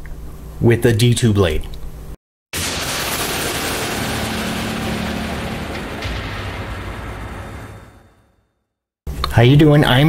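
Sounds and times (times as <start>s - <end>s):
dense rushing noise: 2.6s - 8.3s.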